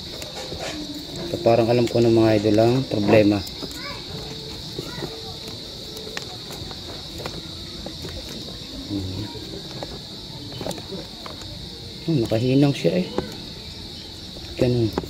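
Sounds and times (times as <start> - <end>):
crickets trilling: 0.0 - 15.0.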